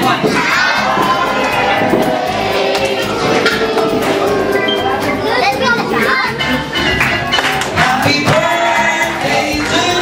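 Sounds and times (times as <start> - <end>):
crowd shouting and cheering: 0.0 - 10.0
high children's voices: 0.2 - 7.0.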